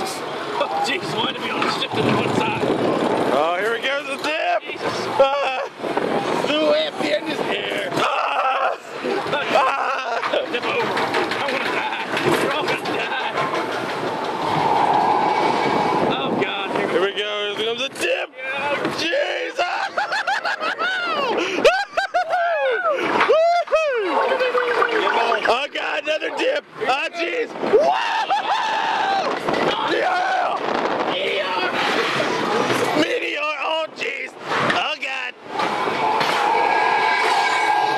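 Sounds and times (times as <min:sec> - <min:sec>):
people's voices: 0:00.0 - 0:37.9
roller coaster rattling on track: 0:00.0 - 0:37.9
wind and ride noise: 0:00.0 - 0:37.9
riders yelling: 0:07.8 - 0:10.3, 0:27.6 - 0:33.5.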